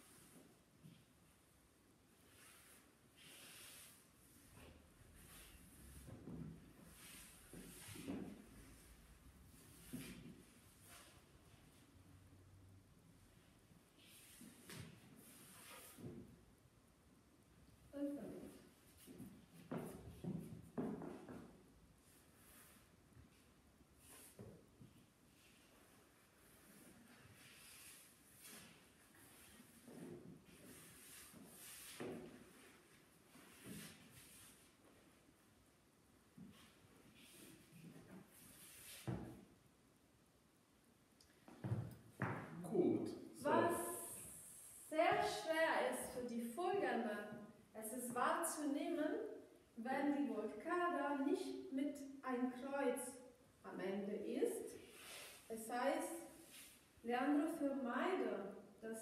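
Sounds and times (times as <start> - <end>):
dance shoes scuffing on parquet: 18.9 - 21.6, 26.6 - 35.0, 41.5 - 42.5
dancers moving softly: 41.3 - 46.1.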